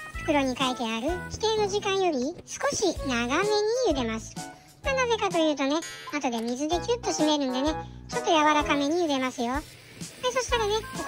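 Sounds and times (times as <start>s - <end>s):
high-pitched voice speaking: 0.3s - 11.0s.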